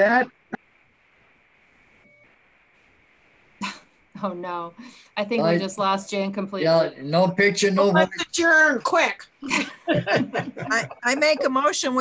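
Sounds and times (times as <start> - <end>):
faint line hiss: 0.0 - 6.3
person's voice burst: 9.9 - 11.7.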